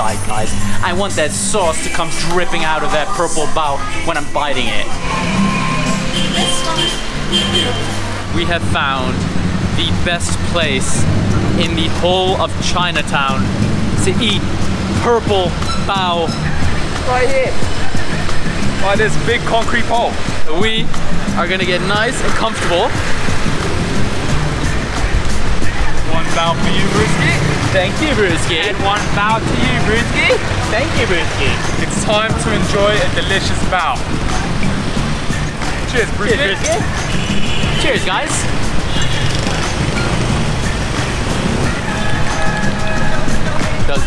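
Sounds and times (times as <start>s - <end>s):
background music: 0.0s - 44.0s
city street traffic: 0.0s - 44.0s.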